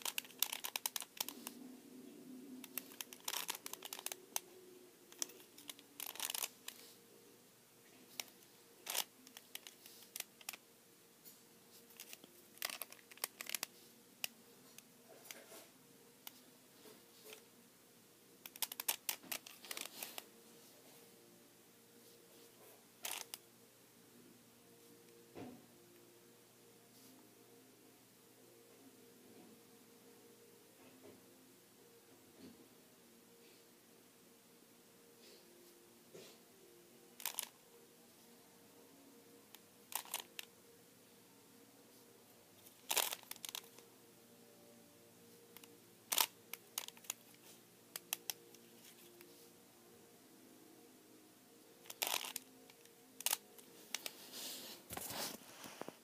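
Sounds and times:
puzzle cube layers clacking: 0.0 - 1.6, 2.6 - 4.5, 5.1 - 6.8, 8.2 - 10.6, 11.9 - 13.7, 18.5 - 20.2, 37.2 - 37.6, 39.9 - 40.4, 42.7 - 43.8, 51.9 - 52.4.

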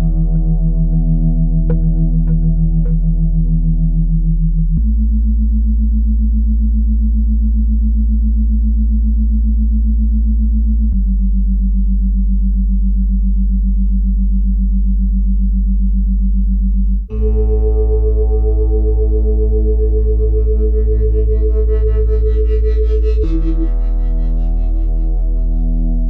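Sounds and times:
pulsing synthesizer drone tones: 0.0 - 7.2, 8.6 - 26.0
deep bass hum: 0.0 - 26.0.

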